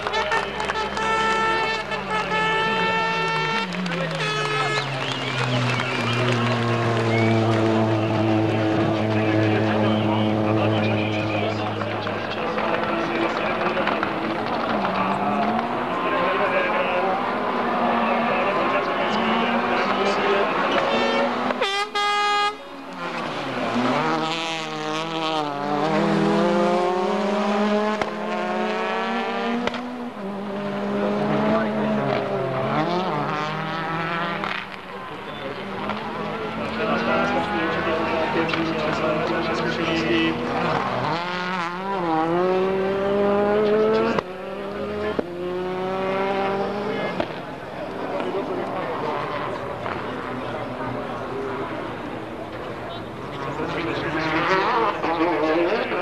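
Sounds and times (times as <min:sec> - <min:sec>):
turbocharged car engine revving: 0:00.0 - 0:21.7, 0:23.0 - 0:56.0
rally car engines revving: 0:00.0 - 0:56.0.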